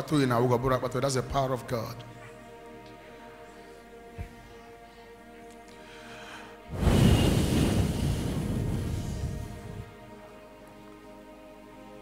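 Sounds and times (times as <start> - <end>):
air rushing on microphone: 6.7 - 10.0.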